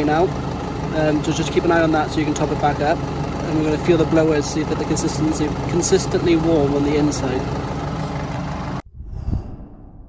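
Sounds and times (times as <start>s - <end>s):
car engine idling: 0.0s - 8.8s.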